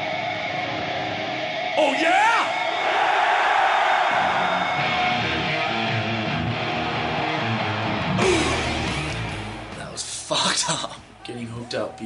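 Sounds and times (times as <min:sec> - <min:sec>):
distorted electric guitar: 0:00.0 - 0:02.8, 0:04.1 - 0:10.0
live heavy metal band: 0:04.1 - 0:09.8.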